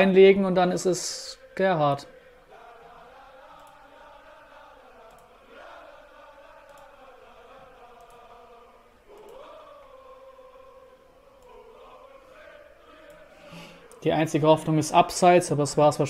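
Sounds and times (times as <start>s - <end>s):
stadium crowd chanting: 1.2s - 15.3s.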